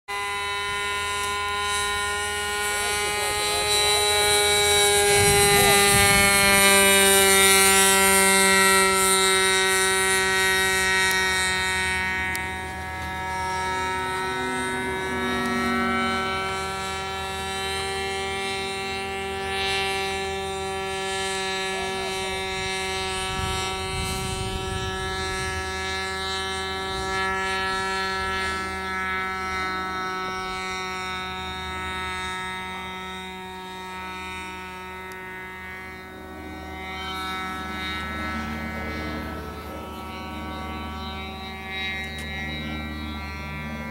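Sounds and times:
model aeroplane motor droning: 0.1s - 43.9s.

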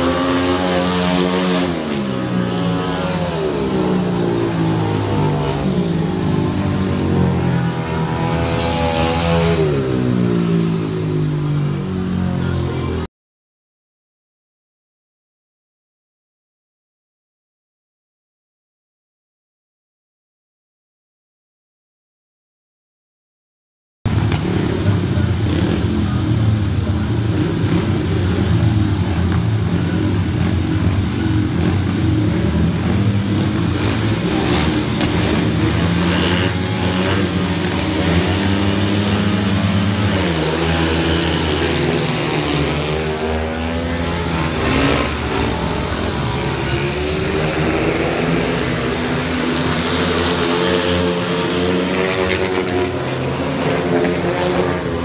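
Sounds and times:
motorcycles revving and racing: 0.0s - 13.1s, 24.1s - 55.0s.

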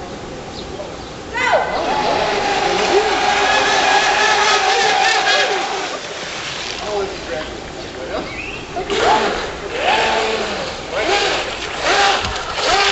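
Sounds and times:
model boat motor high whine: 8.8s - 12.9s.

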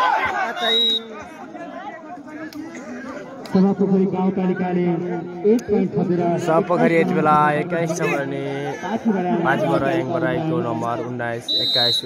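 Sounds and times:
crowd shouting: 0.0s - 4.0s
many voices chattering: 0.0s - 12.0s.

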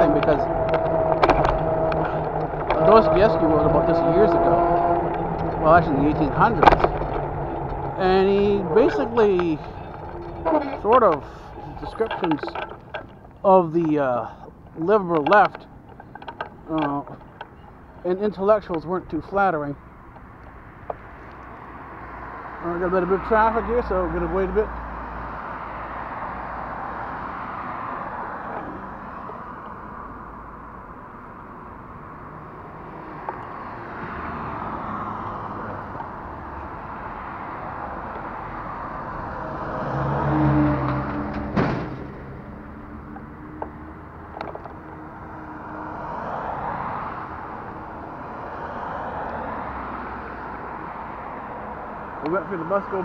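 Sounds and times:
tow truck engine hum: 0.0s - 53.0s
vehicles passing: 0.0s - 53.0s.

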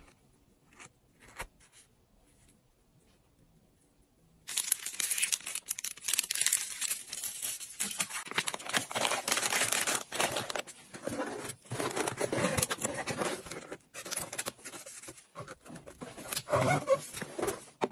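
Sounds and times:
paper packaging crinkling: 4.5s - 17.9s.

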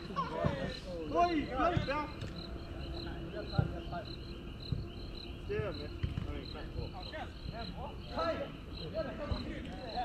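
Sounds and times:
cricket chirping: 0.0s - 10.0s.

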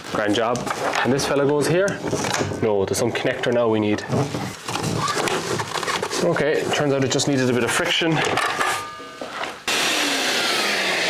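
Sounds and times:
workshop vacuum rushing: 9.7s - 11.0s.

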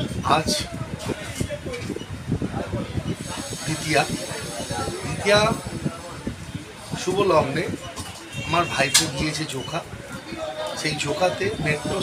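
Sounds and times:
man talking: 0.0s - 1.7s, 7.0s - 7.8s, 8.4s - 9.9s, 10.7s - 12.0s.

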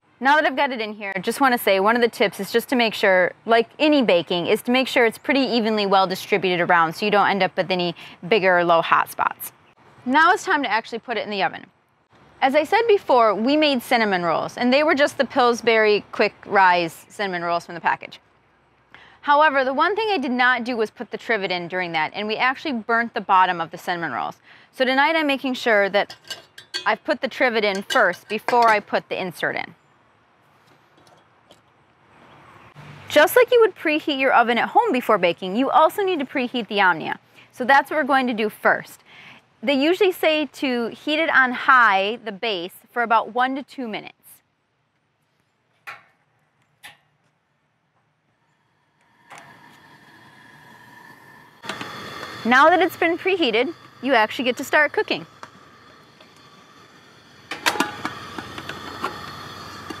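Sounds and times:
gas burner hissing: 25.6s - 28.9s, 48.6s - 60.0s
metal pan clanking: 26.0s - 28.9s, 57.5s - 60.0s.

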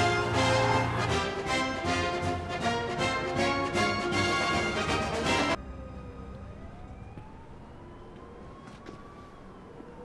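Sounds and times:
emergency vehicle siren wailing: 0.0s - 2.1s, 3.0s - 10.0s
city street background: 0.0s - 10.0s.

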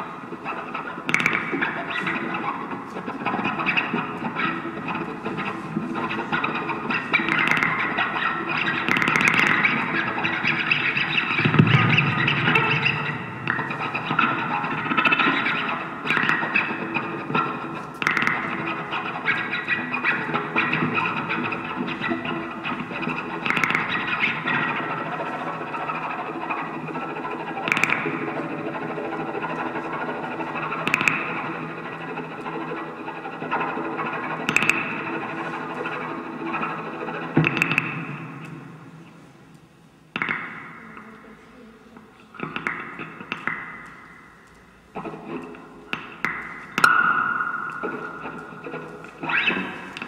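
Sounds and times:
processed experimental music texture: 0.0s - 50.0s.

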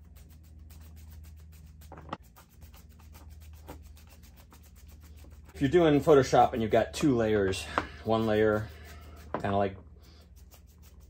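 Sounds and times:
paintbrush scrubbing: 0.0s - 11.0s.

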